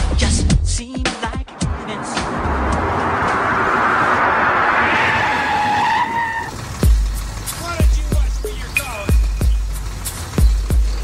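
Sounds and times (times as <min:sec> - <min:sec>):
noisy rush with high squeal: 0:01.6 - 0:11.0
beat-driven music: 0:06.8 - 0:11.0.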